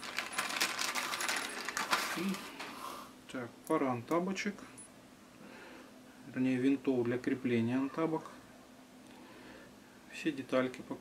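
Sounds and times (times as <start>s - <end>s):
metal screws jingling in plastic bag: 0.0s - 2.3s.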